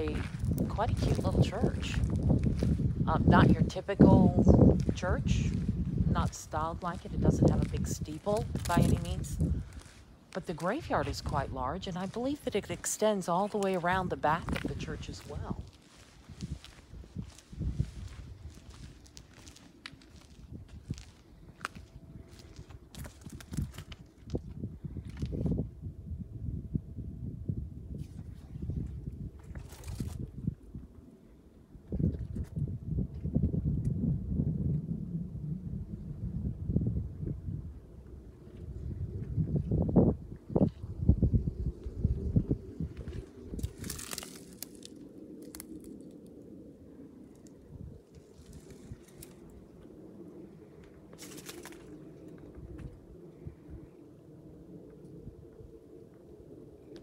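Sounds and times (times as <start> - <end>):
handheld camera rumble: 0.0 - 25.8, 31.7 - 57.0
footsteps: 4.7 - 24.0.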